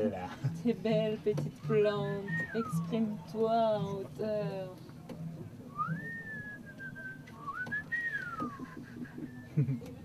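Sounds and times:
person whistling a melody: 2.2s - 3.0s, 5.7s - 9.8s.

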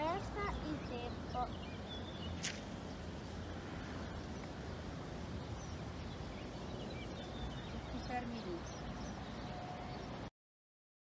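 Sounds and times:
steady low rumble: 0.0s - 10.3s.

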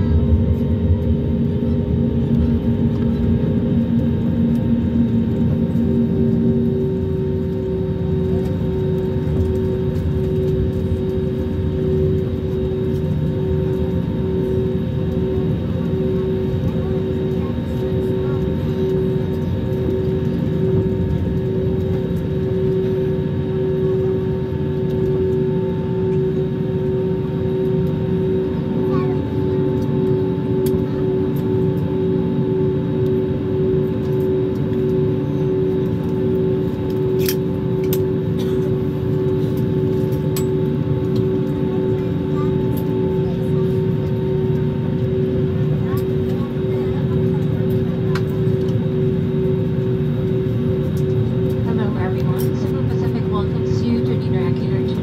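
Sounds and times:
jet engines humming in cabin: 0.0s - 55.0s.

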